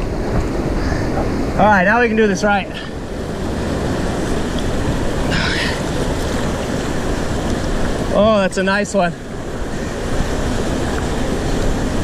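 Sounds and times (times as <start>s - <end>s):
creek rushing over boulders: 0.0s - 12.0s.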